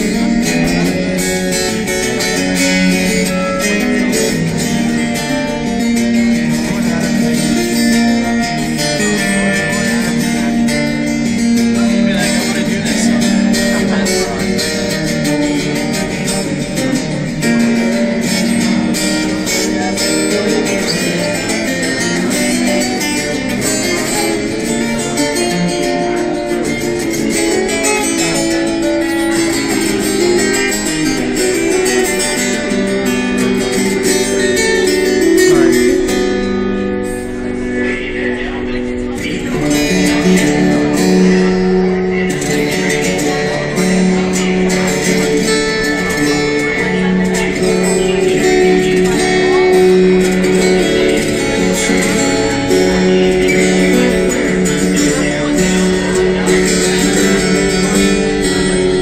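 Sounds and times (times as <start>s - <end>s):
plucked string instrument tune: 0.0s - 59.0s.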